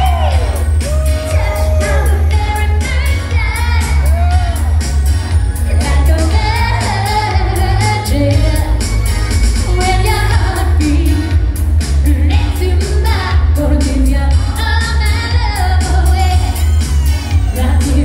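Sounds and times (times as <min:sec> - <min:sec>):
dance-pop music with heavy bass: 0:00.0 - 0:18.0
woman singing into microphone: 0:01.0 - 0:04.7, 0:05.7 - 0:16.6, 0:17.4 - 0:18.0.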